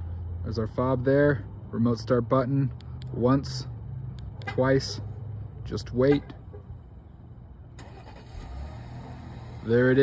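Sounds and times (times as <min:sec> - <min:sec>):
car engine idling: 0:02.7 - 0:10.0
engine starter cranking: 0:07.8 - 0:09.9.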